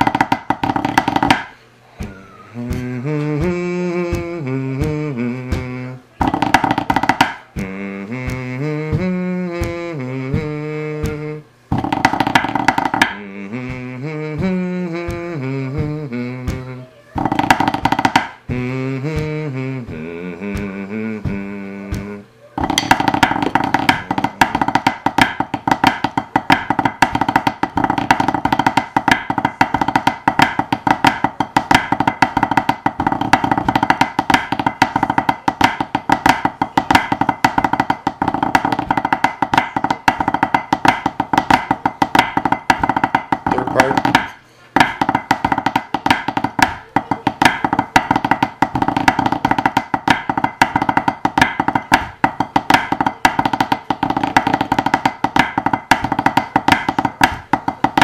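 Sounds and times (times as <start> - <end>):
drumsticks on practice pad: 0.0 - 58.0
person humming melody: 0.0 - 58.0.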